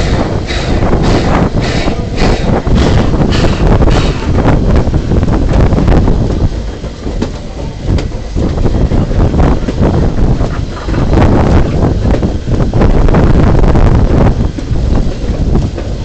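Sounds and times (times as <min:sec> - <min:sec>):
train running along track: 0:00.0 - 0:16.0
wind buffeting microphone: 0:00.0 - 0:16.0.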